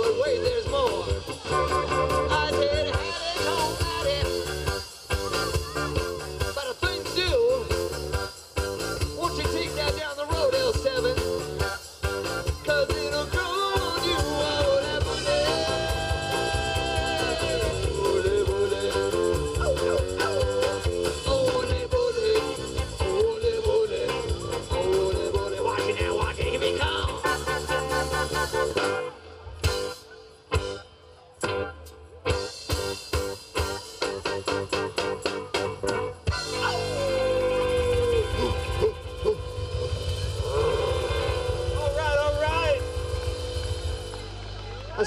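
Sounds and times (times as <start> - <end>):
tambourine: 0.0 - 30.8, 32.4 - 44.1
live band playing upbeat song: 0.0 - 45.0.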